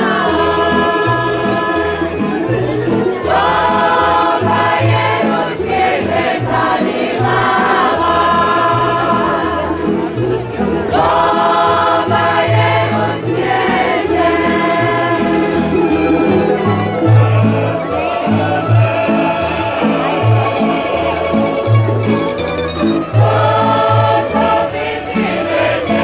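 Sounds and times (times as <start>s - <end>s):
women singing in harmony: 0.0s - 2.2s, 3.2s - 10.1s, 10.7s - 21.9s, 23.2s - 26.0s
plucked bass line: 0.0s - 26.0s
plucked string band: 0.0s - 26.0s.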